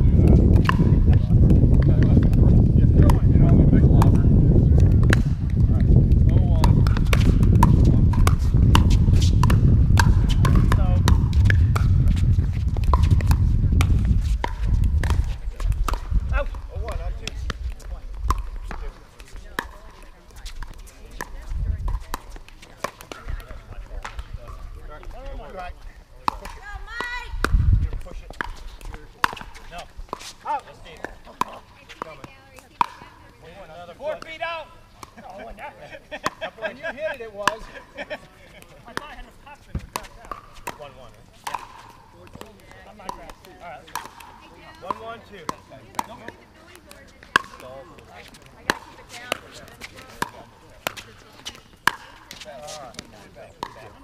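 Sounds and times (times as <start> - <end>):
heavy low rumble: 0.0 - 16.4
paddles striking plastic ball: 0.2 - 25.2, 26.2 - 33.2, 38.6 - 54.0.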